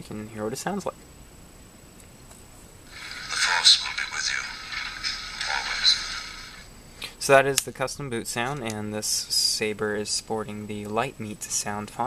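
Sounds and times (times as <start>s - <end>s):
thin voice-like recorded clip: 2.9s - 6.7s.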